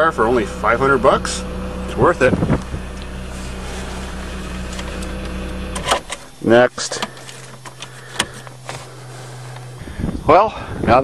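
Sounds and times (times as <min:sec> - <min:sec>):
car engine idling: 0:00.0 - 0:11.0.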